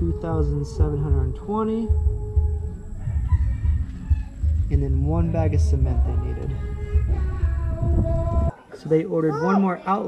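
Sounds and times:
low rumble: 0.0 - 8.5
rooster crowing: 2.3 - 4.6.

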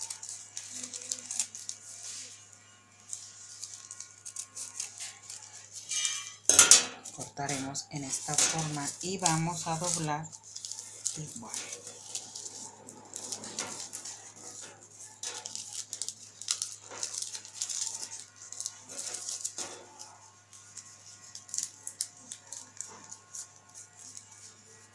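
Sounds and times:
paper rustling and crinkling: 0.0 - 24.9.

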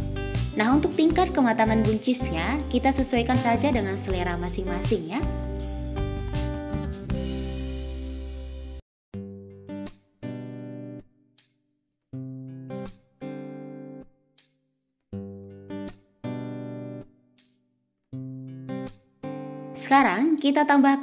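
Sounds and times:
acoustic guitar chords: 0.0 - 11.1, 15.2 - 17.1.

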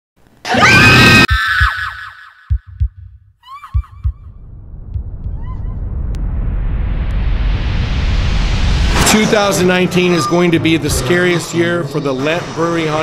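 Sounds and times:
shrill scream with echoes: 0.5 - 2.6
heartbeat thumps: 2.5 - 9.0
rising rush of noise: 4.1 - 11.4.

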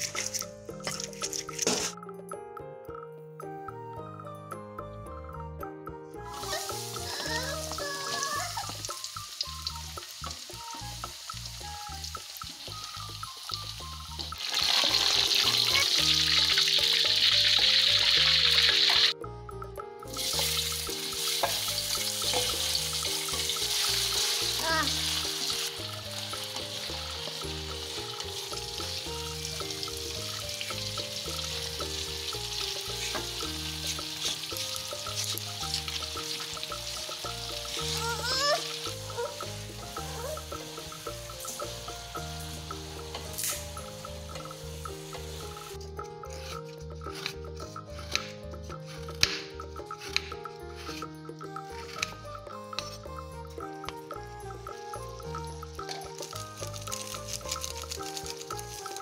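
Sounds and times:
background music with steady beat: 0.0 - 59.0
oil sizzling in a wok: 6.3 - 19.2, 20.1 - 45.8, 54.1 - 59.0.

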